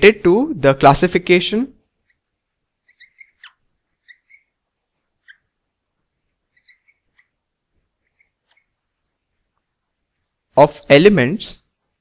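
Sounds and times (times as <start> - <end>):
marker squeaking on whiteboard: 1.9 - 9.7.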